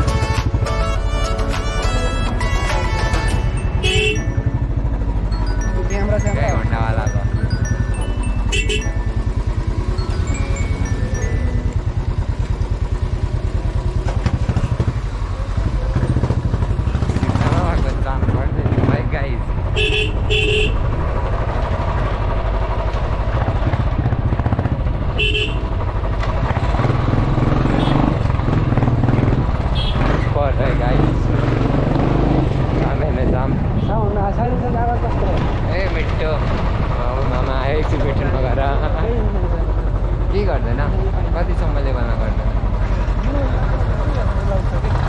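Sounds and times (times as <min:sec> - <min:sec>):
motorcycle engine running: 0:00.0 - 0:45.0
vehicle horn beeps: 0:01.7 - 0:04.4, 0:08.5 - 0:08.9, 0:19.8 - 0:20.8, 0:25.2 - 0:25.6.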